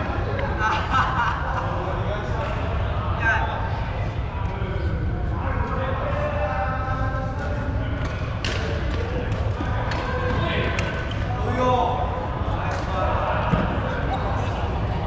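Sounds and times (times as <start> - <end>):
players' voices: 0.0 - 15.0.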